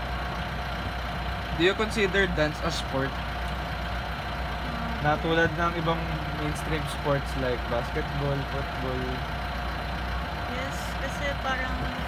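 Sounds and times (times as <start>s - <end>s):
thin even whine: 4.5s - 6.5s.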